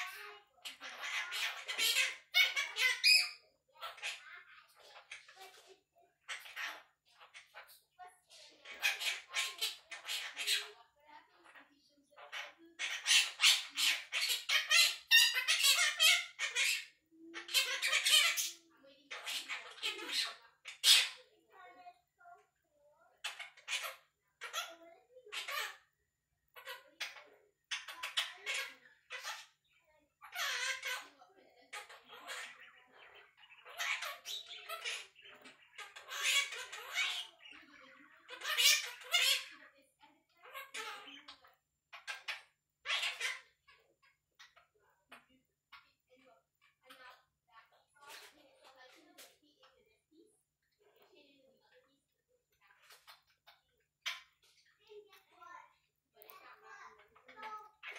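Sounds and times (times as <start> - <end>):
parrot chattering and squawking: 0.0 - 57.9.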